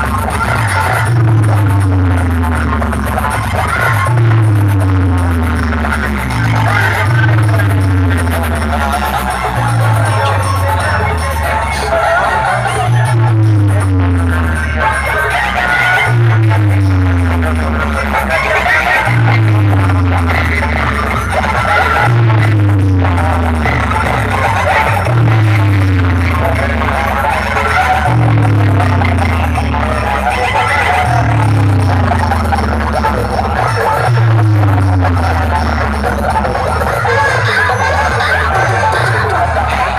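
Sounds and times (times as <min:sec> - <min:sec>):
loud electronic dance music: 0:00.0 - 0:39.9
deep booming bass note: 0:12.6 - 0:15.0, 0:28.0 - 0:30.3, 0:31.0 - 0:36.5.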